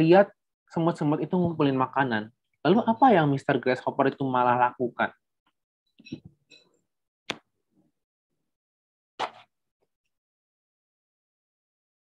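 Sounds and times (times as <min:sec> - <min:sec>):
short pop: 0:09.2 - 0:09.5.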